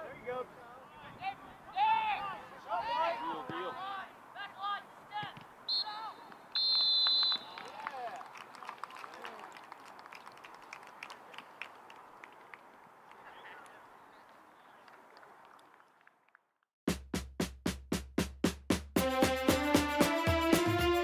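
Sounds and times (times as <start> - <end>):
players and spectators voices: 0.0 - 6.3
referee's whistle blasts: 5.7 - 7.6
scattered clapping: 6.3 - 16.4.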